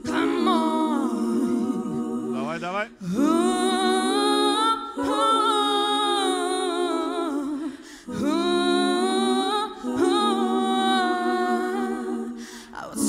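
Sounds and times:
singer breathing: 7.7 - 8.2, 12.4 - 12.8.

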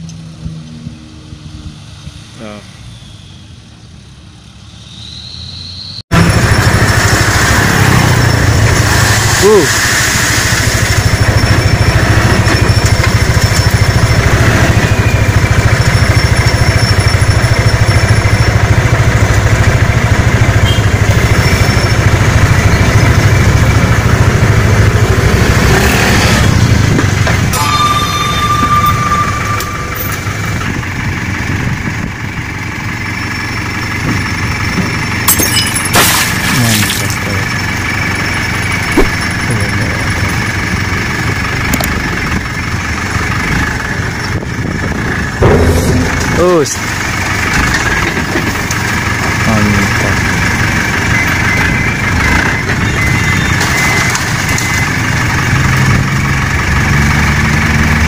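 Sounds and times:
dump truck engine running: 6.1 - 58.0.

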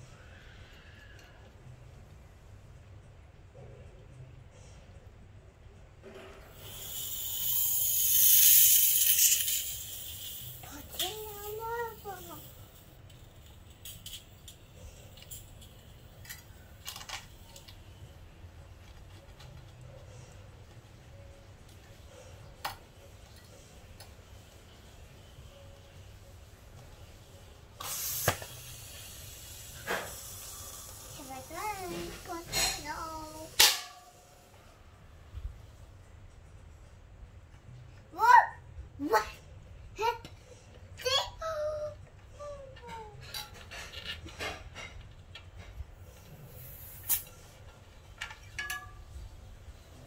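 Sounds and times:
compressed gas hissing: 6.4 - 16.8, 27.1 - 34.6, 45.9 - 47.7.

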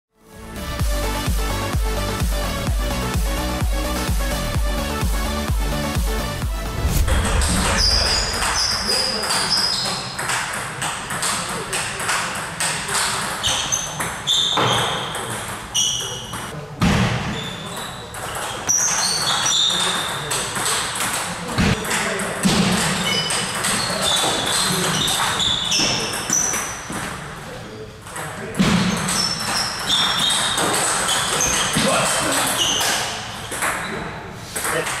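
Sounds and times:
electronic dance music: 0.3 - 9.2
voices in a hall: 6.8 - 35.0.

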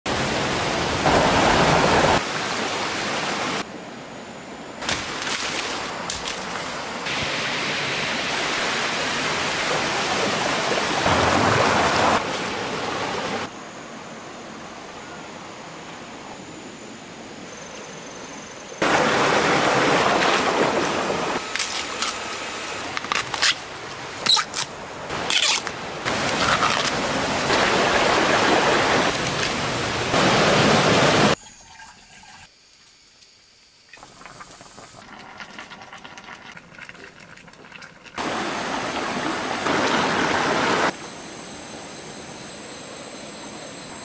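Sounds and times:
stream rushing over rocks: 0.1 - 3.7, 4.8 - 13.5, 18.8 - 21.6, 24.8 - 31.4, 38.2 - 41.0.

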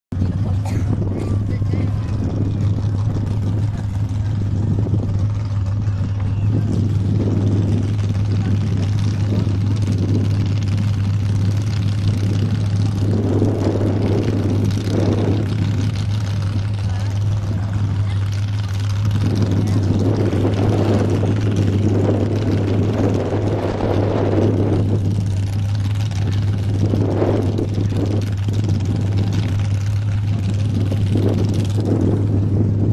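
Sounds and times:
off-road vehicle engine revving: 0.2 - 32.9.

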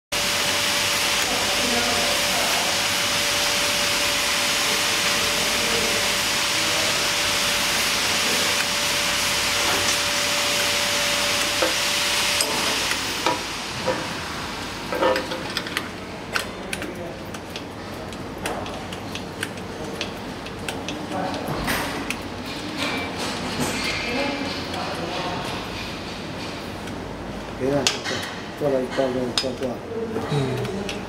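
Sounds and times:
faint machinery hum: 0.1 - 31.0
machinery hiss: 0.2 - 15.6
hands tapping metal parts: 29.0 - 29.7.

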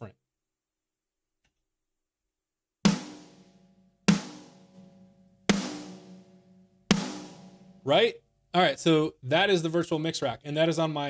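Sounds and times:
snare drum hits with ringing sustain: 4.1 - 7.8.

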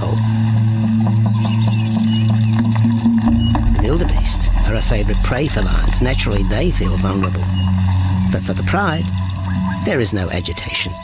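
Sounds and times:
music with held low note: 0.0 - 11.0.

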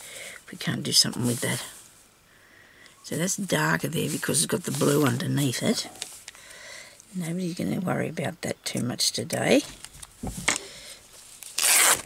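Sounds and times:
fabric rubbing against paper: 3.6 - 6.2.

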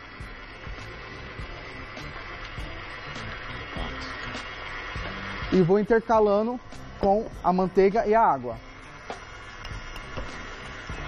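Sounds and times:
stand mixer whisking batter: 0.0 - 11.0.

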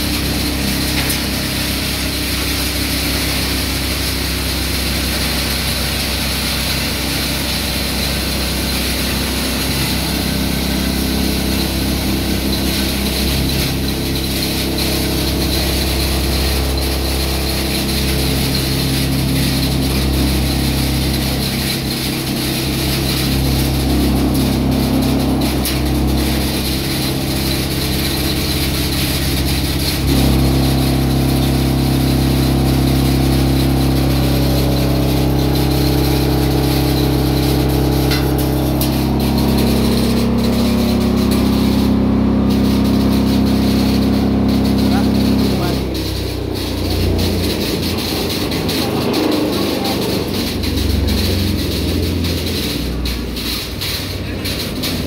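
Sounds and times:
hammer mill grinding: 0.0 - 55.0.

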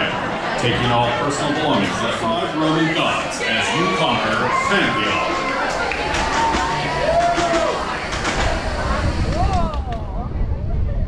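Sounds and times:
roller coaster rumbling on track: 0.0 - 11.0
riders whooping and cheering: 3.6 - 10.2
wind on microphone: 6.0 - 11.0.

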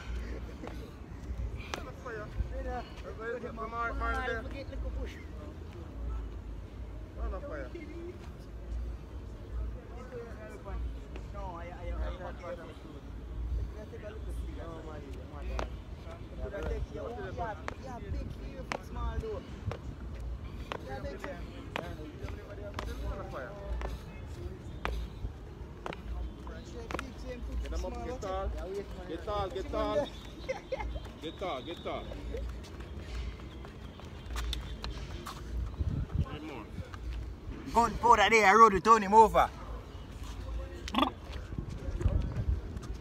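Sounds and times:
distant people talking: 0.0 - 43.0
wind rumble on microphone: 35.6 - 37.0, 41.4 - 43.0.

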